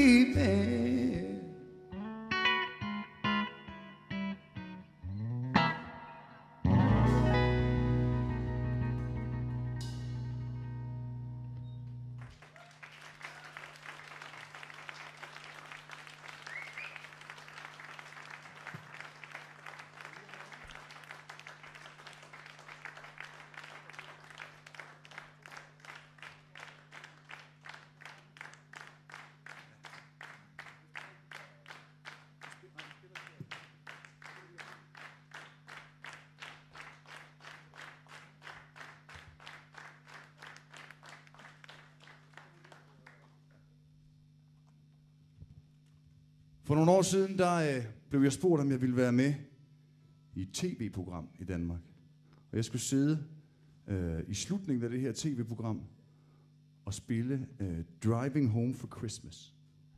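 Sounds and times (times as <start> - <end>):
rhythmic clapping in unison: 11.8 - 43.6
audience applause: 12.2 - 43.6.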